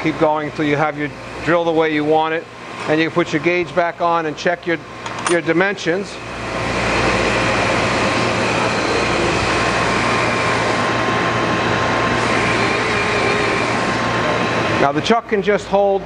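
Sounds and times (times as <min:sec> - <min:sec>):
motor hum: 0:00.0 - 0:16.0
grinder grinding hiss: 0:06.2 - 0:11.0, 0:12.0 - 0:14.4.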